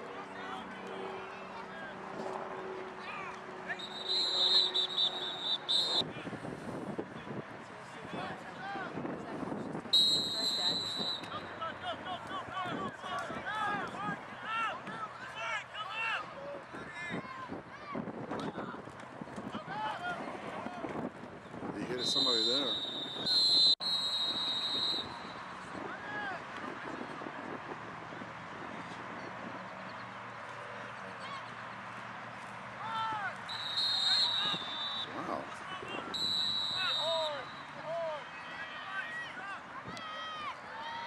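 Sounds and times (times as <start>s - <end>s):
referee's pea whistle blasts: 3.8s - 6.0s, 10.0s - 11.4s, 22.0s - 25.3s, 33.5s - 35.3s, 36.1s - 37.8s.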